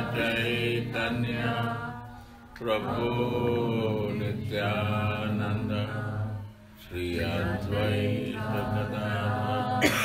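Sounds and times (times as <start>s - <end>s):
person chanting prayer: 2.6s - 10.0s.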